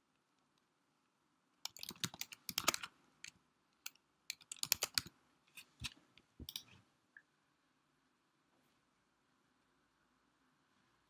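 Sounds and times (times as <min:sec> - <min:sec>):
typing on computer keyboard: 0:01.6 - 0:02.9, 0:03.8 - 0:05.1.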